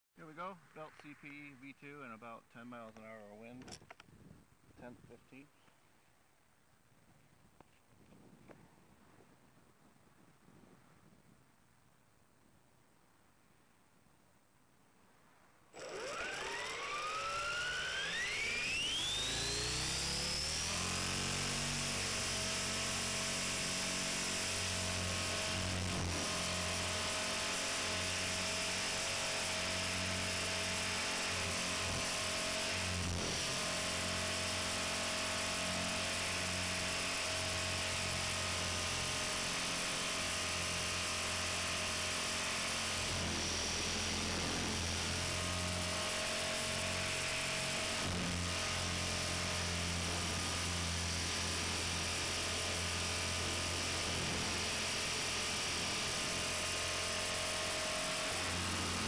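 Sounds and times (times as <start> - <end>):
helicopter motor and rotor whine: 15.8 - 59.0.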